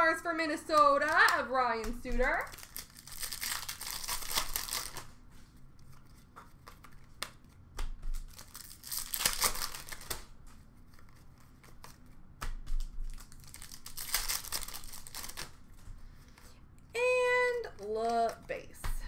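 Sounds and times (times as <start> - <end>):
card pack wrappers crinkling: 0.5 - 5.1, 8.1 - 12.1, 12.8 - 15.7
cards clicking while handled: 5.9 - 15.5.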